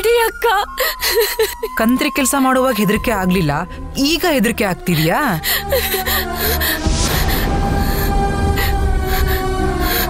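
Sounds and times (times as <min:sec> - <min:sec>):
heavy low drone: 0:05.4 - 0:10.0.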